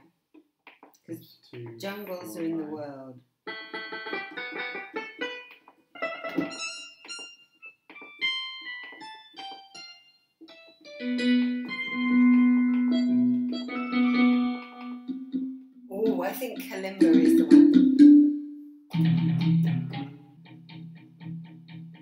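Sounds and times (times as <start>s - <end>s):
digital keyboard notes: 3.5s - 18.6s.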